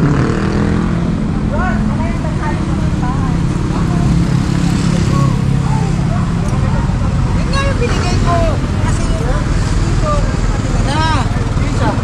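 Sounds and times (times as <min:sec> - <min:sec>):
vehicle engine running: 0:00.0 - 0:12.0
people talking: 0:01.4 - 0:12.0.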